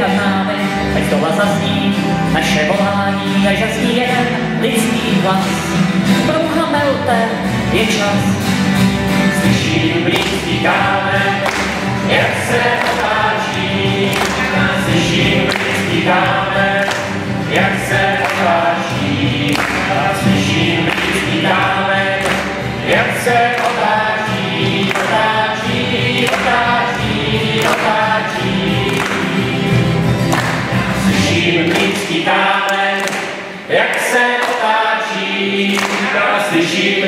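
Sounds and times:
double bass: 0.0 - 31.7
strummed acoustic guitar: 0.0 - 37.0
mixed choir singing: 9.2 - 37.0.

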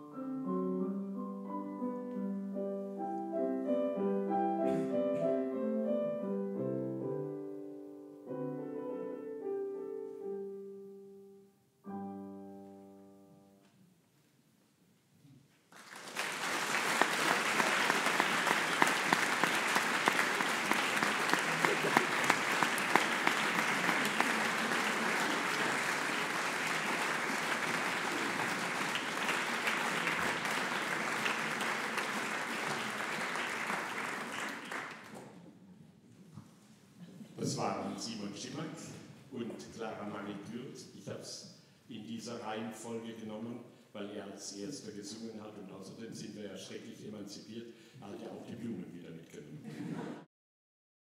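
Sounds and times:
audience applause: 15.7 - 35.3.

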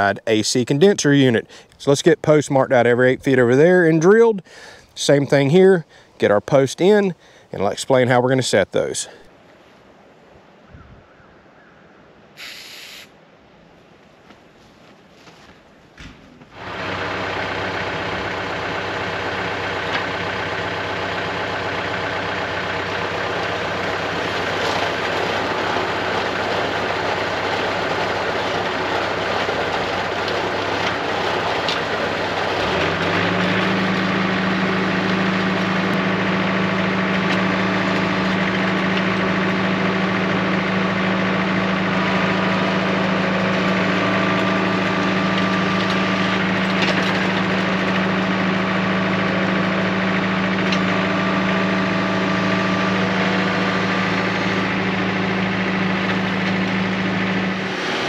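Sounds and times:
tractor diesel engine running: 0.0 - 9.4, 16.5 - 58.0
auger boring into ground: 16.6 - 58.0.

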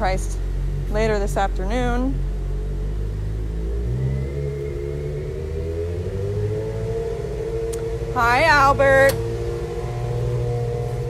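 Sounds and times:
engine running with rising pitch: 0.0 - 11.0.

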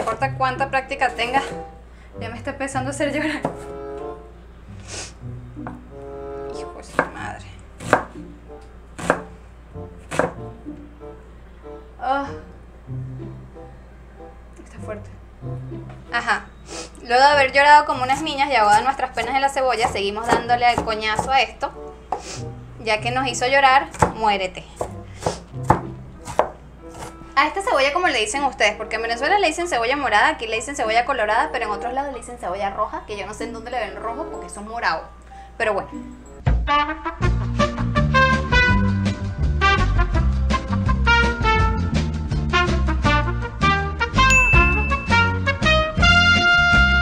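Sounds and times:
knife chopping on cutting board: 3.4 - 3.7, 6.9 - 8.2, 9.0 - 9.3, 10.0 - 10.4, 18.0 - 21.4, 23.9 - 27.2.

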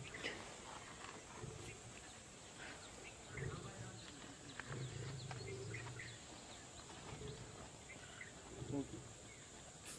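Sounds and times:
faint outdoor background noise: 0.0 - 9.9.

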